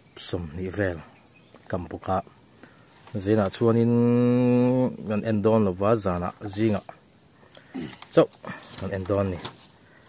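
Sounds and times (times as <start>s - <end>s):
man speaking syllables: 3.1s - 7.0s.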